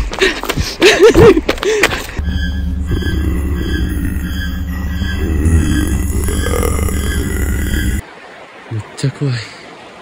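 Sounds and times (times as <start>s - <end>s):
dark background music: 2.2s - 8.0s
faint high pulse: 2.2s - 8.0s
low bass drone: 2.2s - 8.0s.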